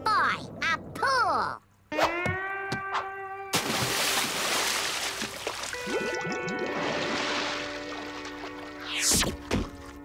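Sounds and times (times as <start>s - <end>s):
water sloshing and bubbling: 3.6s - 10.0s
cartoon water splash: 8.8s - 9.7s.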